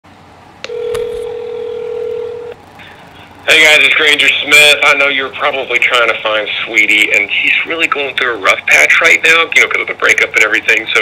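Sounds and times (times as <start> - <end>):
steady telephone tone: 0.6 - 2.6
telephone line click: 0.6 - 2.6.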